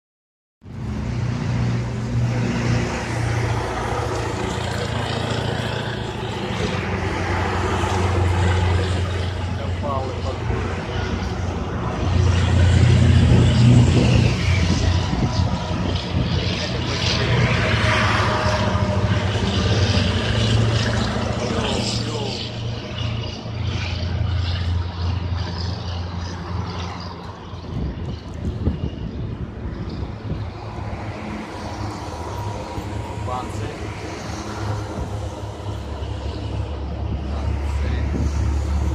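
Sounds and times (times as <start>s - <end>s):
trucks driving past: 0.6s - 38.9s.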